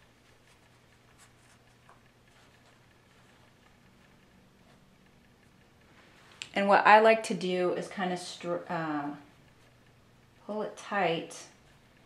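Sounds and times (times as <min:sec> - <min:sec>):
low room hum: 0:00.0 - 0:12.0
soft ticks: 0:00.0 - 0:12.0.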